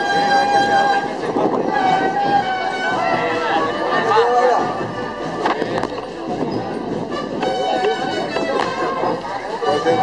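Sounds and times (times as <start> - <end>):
murmur of walking crowd: 0.0 - 10.0.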